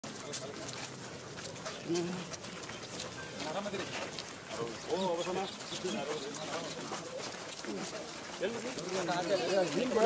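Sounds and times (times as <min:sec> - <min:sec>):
crowd chatter: 0:00.0 - 0:10.0
shuffling: 0:00.0 - 0:10.0.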